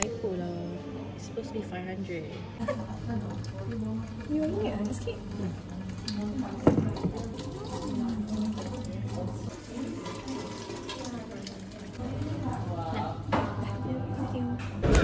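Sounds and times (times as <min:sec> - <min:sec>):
tap water over hands into bucket: 0:06.0 - 0:07.9.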